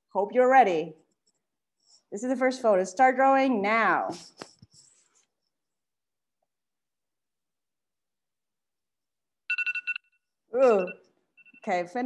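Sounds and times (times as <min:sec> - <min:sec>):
timer alarm beeping: 0:09.5 - 0:12.0.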